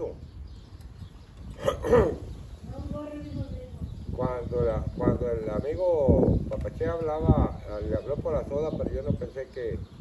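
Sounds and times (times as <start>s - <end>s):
man's throat sound: 1.5s - 2.2s.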